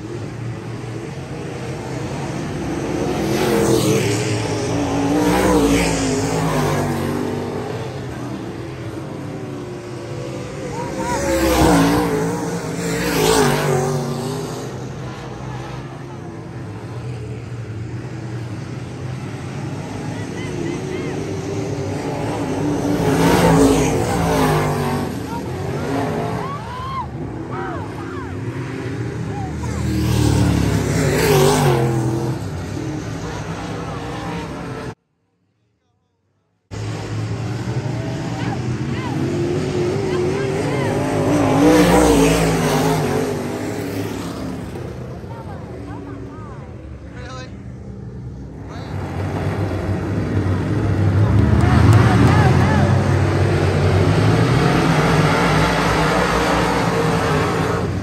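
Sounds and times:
race car engines passing: 0:00.0 - 0:35.0, 0:36.7 - 0:58.0.

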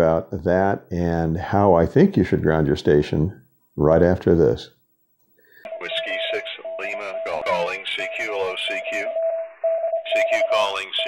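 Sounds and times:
radio static hiss: 0:05.7 - 0:09.1, 0:10.1 - 0:11.0
voices over radio receiver: 0:05.7 - 0:09.2, 0:10.0 - 0:11.0
morse code tone: 0:05.7 - 0:11.0.

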